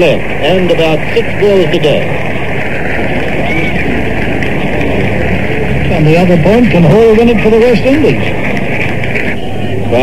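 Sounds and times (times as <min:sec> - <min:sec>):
crowd hubbub over radio: 0:00.0 - 0:10.0.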